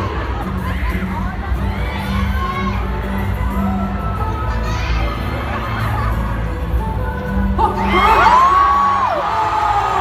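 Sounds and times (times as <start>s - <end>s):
crowd screaming and cheering: 0.0s - 10.0s.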